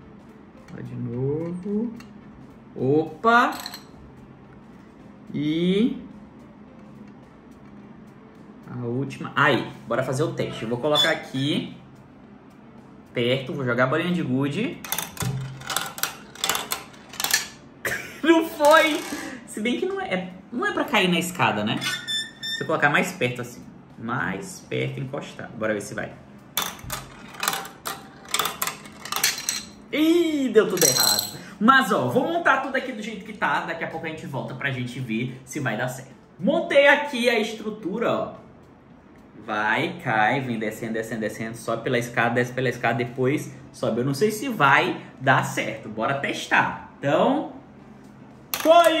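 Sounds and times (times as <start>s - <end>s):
low steady hum: 0.0s - 49.0s
plastic dominoes clicking: 14.9s - 17.6s, 26.6s - 29.7s
marble rattling down plastic run: 18.6s - 19.4s, 26.6s - 29.7s.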